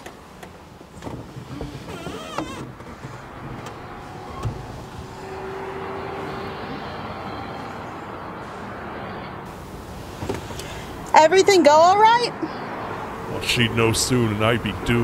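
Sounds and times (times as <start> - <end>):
low car rumble: 0.0 - 15.0.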